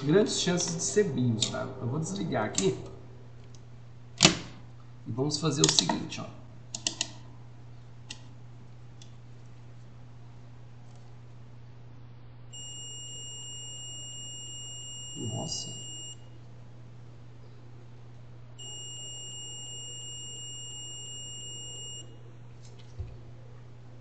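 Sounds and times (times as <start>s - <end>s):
steady low hum: 0.0s - 24.0s
multimeter continuity beep: 12.5s - 16.3s, 18.6s - 22.2s.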